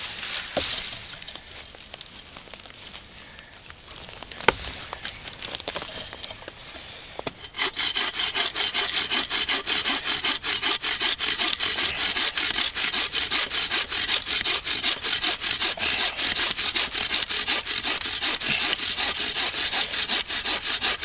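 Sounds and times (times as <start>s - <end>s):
bow saw cutting through log: 7.3s - 21.0s.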